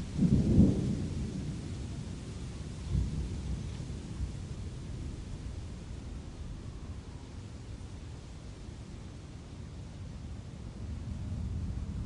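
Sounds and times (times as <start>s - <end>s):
thunder rumbling: 0.0s - 5.7s.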